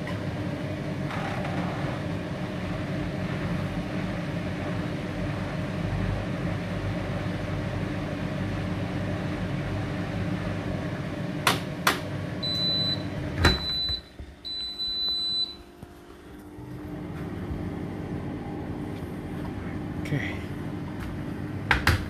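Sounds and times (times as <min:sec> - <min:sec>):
washing machine hum: 0:00.0 - 0:22.0.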